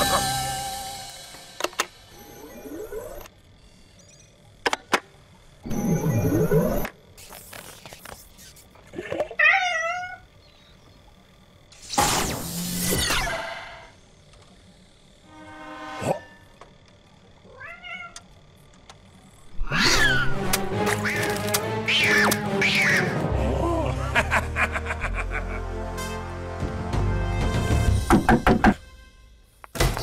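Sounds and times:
background music: 0:00.0 - 0:02.4, 0:19.8 - 0:30.0
cartoon voice squawks: 0:21.9 - 0:23.2.

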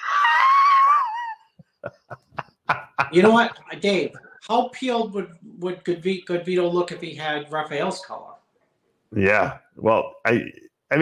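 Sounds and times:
man laughing in falsetto: 0:00.0 - 0:03.2.

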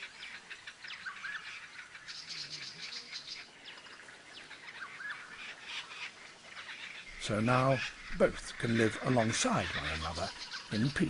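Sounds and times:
small birds chirping and singing: 0:00.0 - 0:11.0.

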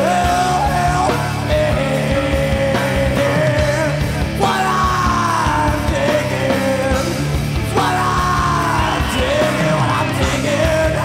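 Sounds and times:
grunge rock band: 0:00.0 - 0:11.0
man singing long notes: 0:00.0 - 0:11.0.

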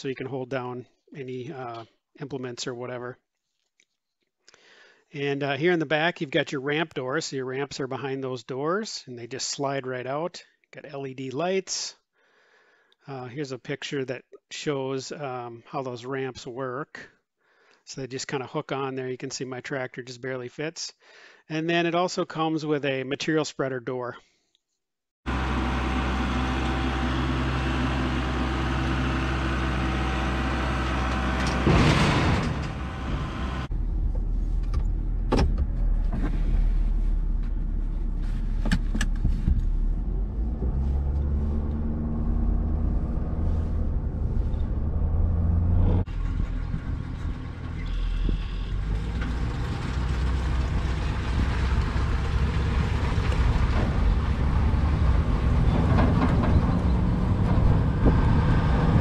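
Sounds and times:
tractor engine running: 0:25.3 - 0:59.0
truck driving on road: 0:25.3 - 0:59.0.

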